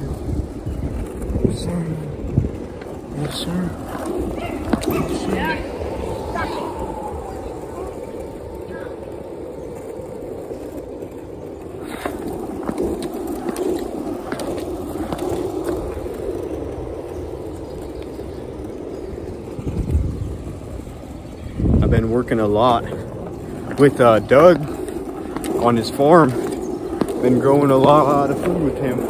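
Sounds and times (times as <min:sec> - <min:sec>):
low rushes of noise: 0:00.0 - 0:10.9
longboard wheels rolling on asphalt: 0:00.0 - 0:29.0.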